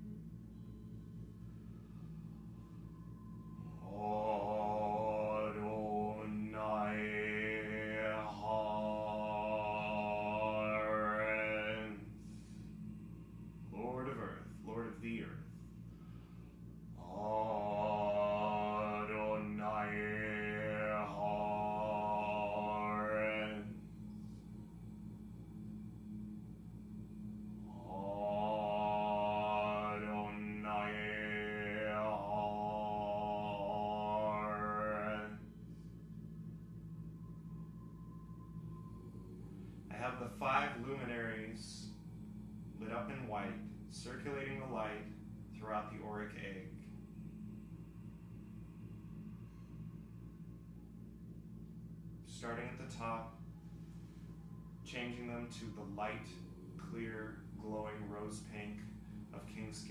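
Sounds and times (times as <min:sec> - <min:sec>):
steady low hum: 0:00.0 - 0:59.9
man chanting: 0:03.6 - 0:16.2, 0:16.9 - 0:24.2, 0:27.0 - 0:35.6, 0:39.8 - 0:49.1, 0:52.3 - 0:53.4, 0:54.8 - 0:59.9.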